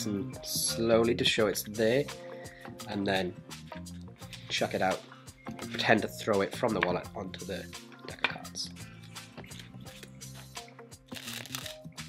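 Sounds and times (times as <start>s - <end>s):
quiet background music: 0.0s - 12.0s
playing cards clicking and rustling: 9.1s - 10.2s, 11.1s - 11.8s.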